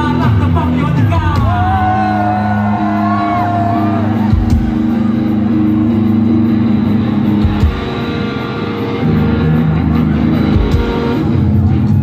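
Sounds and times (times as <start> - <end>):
loud live band over speakers: 0.0 - 12.0.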